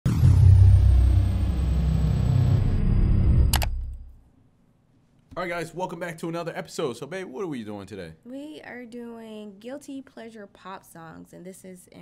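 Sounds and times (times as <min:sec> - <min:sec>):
deep bass rumble: 0:00.0 - 0:04.2
high tone gliding down: 0:00.1 - 0:04.1.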